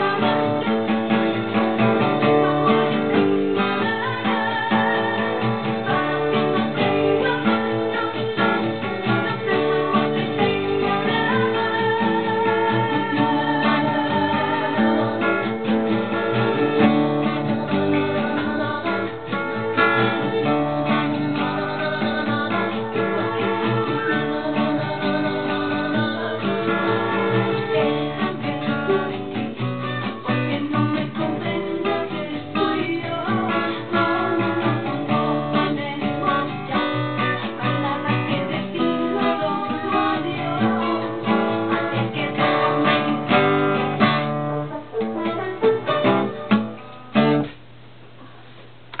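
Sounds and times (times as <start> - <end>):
acoustic guitar strumming: 0.0 - 47.8.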